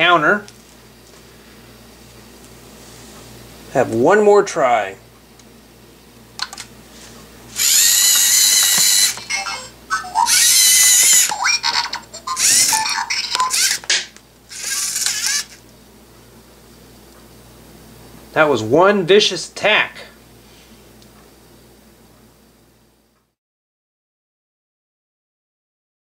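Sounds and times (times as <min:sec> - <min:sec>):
servo motors whining: 0:07.5 - 0:13.8, 0:14.5 - 0:15.6.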